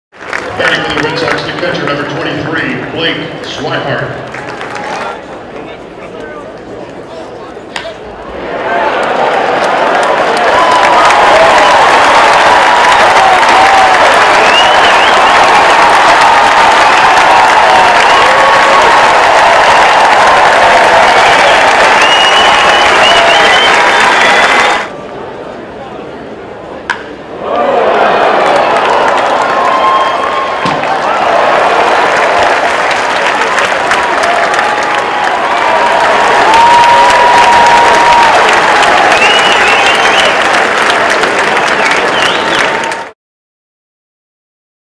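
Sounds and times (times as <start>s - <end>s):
crowd applauding: 0.1s - 5.3s, 8.6s - 24.9s, 27.6s - 43.2s
crowd cheering: 0.1s - 5.3s, 7.8s - 25.0s, 26.9s - 43.2s.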